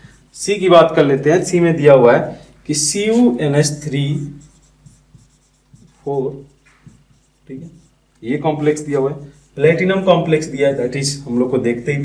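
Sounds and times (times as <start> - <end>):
marker writing on whiteboard: 0.0 - 0.4, 4.0 - 9.8
man speaking: 0.4 - 4.4, 6.0 - 6.5, 7.5 - 12.0.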